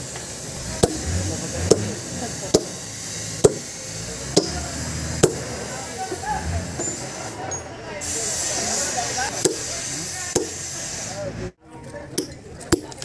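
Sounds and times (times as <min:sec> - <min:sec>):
sledgehammer striking steel wedges: 0:00.8 - 0:05.6, 0:06.7 - 0:07.7, 0:09.3 - 0:09.7, 0:10.3 - 0:10.7.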